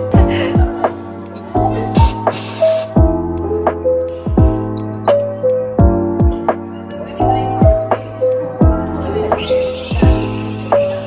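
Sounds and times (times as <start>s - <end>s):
background music: 0.0s - 11.0s
steam wand hissing: 2.0s - 3.0s.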